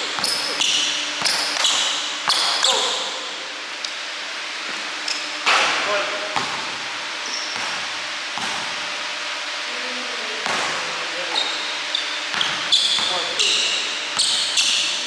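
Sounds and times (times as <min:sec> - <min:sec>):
sneakers squeaking on floor: 0:00.0 - 0:05.4, 0:06.4 - 0:08.8, 0:10.4 - 0:15.0.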